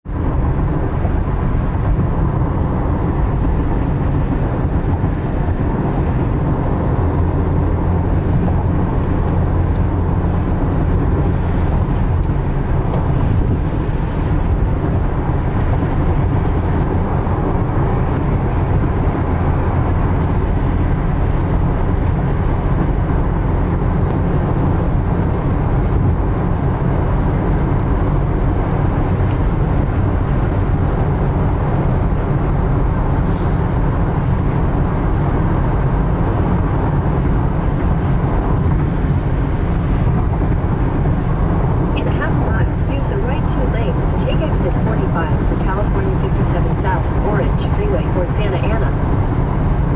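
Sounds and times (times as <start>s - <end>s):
car tyres on wet road: 0.1s - 49.9s.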